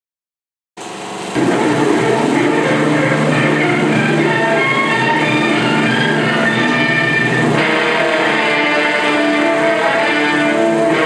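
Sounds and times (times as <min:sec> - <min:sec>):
film projector hum and running: 0:00.8 - 0:11.0
film title music: 0:01.4 - 0:11.0.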